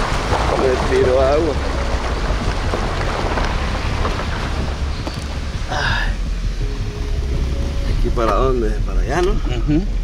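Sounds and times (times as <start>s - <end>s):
wind buffeting microphone: 0.0s - 6.7s
low engine rumble: 0.0s - 10.0s.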